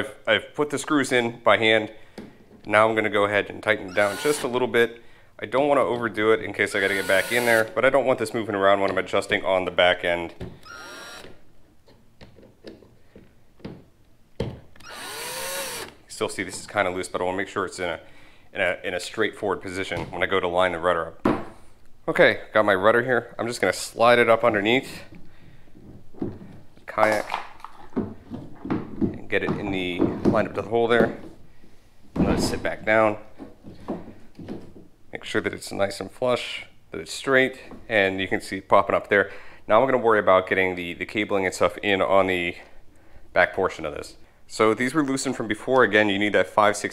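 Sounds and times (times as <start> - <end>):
cordless drill driving screw: 3.9 - 4.6, 6.8 - 7.7, 10.6 - 11.4, 14.8 - 16.0
plastic knocks and scraping: 25.8 - 31.4.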